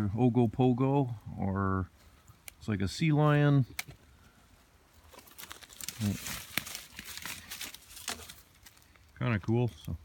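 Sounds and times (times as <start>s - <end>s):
dry leaves crackling and rustling: 4.9s - 9.9s.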